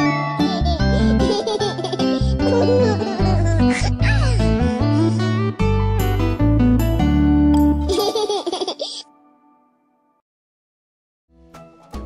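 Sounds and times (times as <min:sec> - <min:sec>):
cartoon children laughing: 0:00.3 - 0:04.5, 0:07.9 - 0:09.1.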